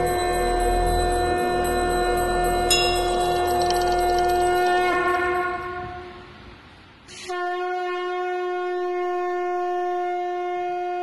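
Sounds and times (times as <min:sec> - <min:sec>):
conch shell blown: 0:00.0 - 0:06.4, 0:07.1 - 0:11.0.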